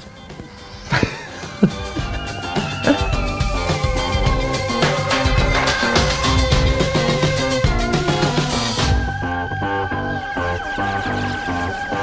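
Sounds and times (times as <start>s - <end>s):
upbeat instrumental music: 0.0s - 12.0s.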